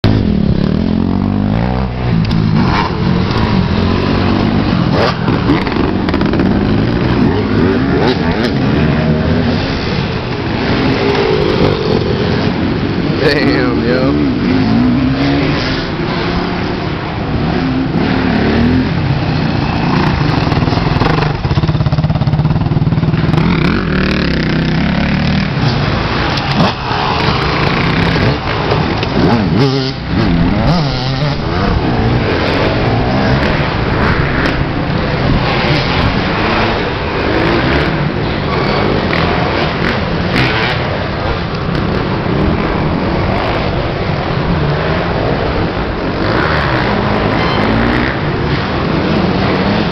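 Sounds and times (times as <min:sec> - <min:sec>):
dirt bike engines revving: 0:00.0 - 0:49.9.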